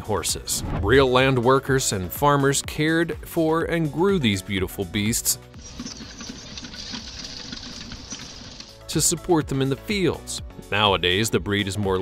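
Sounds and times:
rapid mechanical clatter: 0:05.6 - 0:08.8.

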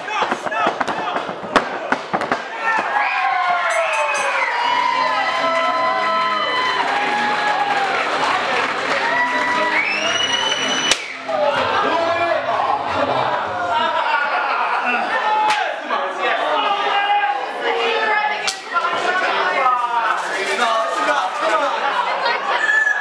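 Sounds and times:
crowd shouting and cheering: 0:00.0 - 0:23.0.

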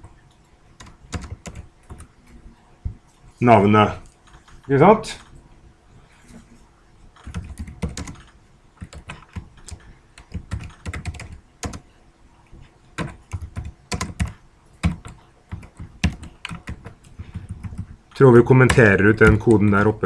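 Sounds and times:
typing on computer keyboard: 0:00.2 - 0:02.1, 0:07.2 - 0:11.8, 0:13.0 - 0:20.0.

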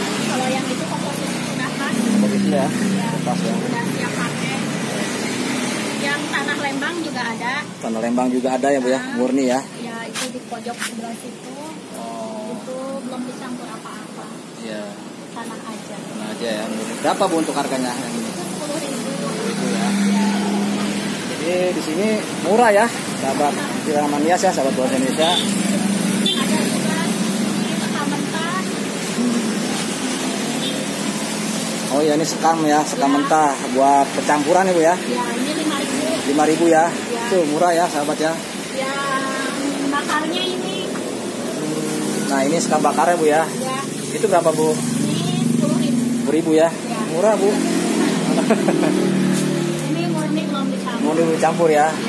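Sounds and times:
motorbikes and cars passing: 0:00.0 - 0:52.0
street traffic noise: 0:00.0 - 0:52.0.

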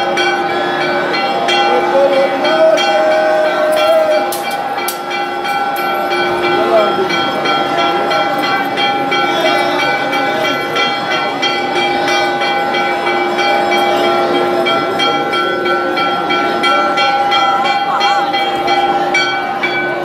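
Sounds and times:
bells ringing: 0:00.0 - 0:20.0
voices chanting: 0:00.0 - 0:20.0.

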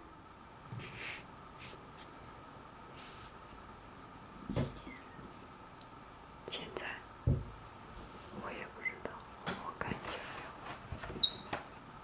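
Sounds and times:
faint steady hum: 0:00.0 - 0:12.0
soft whisper: 0:06.4 - 0:07.1, 0:08.2 - 0:10.8.

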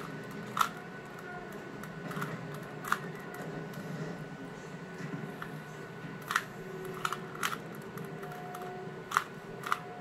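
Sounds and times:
plastic puzzle cube clicking: 0:00.0 - 0:00.8, 0:01.8 - 0:03.4, 0:06.2 - 0:09.8.

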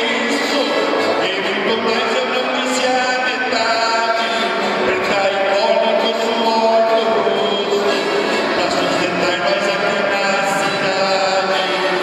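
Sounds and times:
accordion playing held chords: 0:00.0 - 0:12.0
acoustic guitar strumming: 0:00.0 - 0:12.0.

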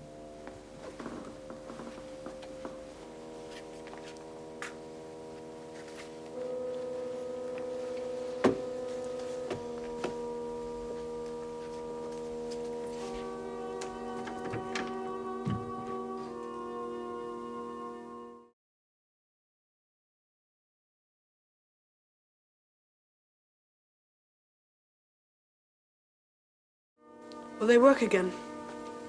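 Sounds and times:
eerie drone music: 0:00.0 - 0:18.5, 0:27.0 - 0:29.0
faint knocks: 0:07.6 - 0:16.0.

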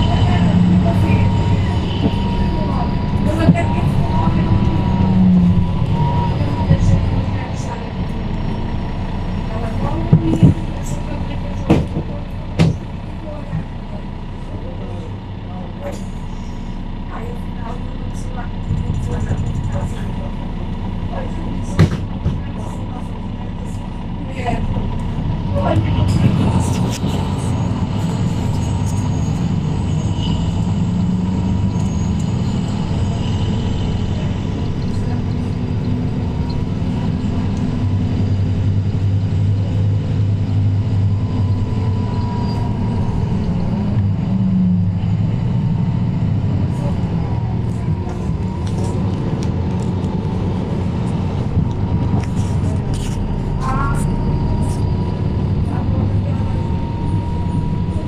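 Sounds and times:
bus diesel engine running: 0:00.0 - 0:58.0
bus body knocks and rattles: 0:09.9 - 0:10.8, 0:11.6 - 0:12.9, 0:21.6 - 0:22.7.

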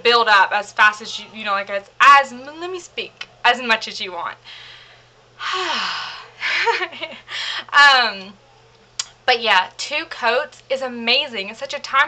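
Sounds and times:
breathy voiced breath: 0:04.4 - 0:06.5, 0:07.3 - 0:07.7
woman sighing: 0:05.4 - 0:06.3.

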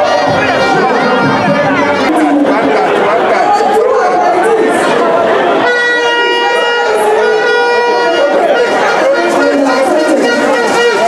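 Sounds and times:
loud crowd chatter: 0:00.0 - 0:11.0.

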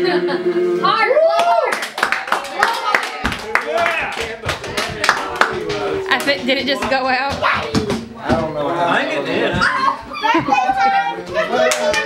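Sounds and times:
laughter: 0:00.0 - 0:00.5, 0:10.2 - 0:10.9
adults and children chattering: 0:02.5 - 0:12.0.

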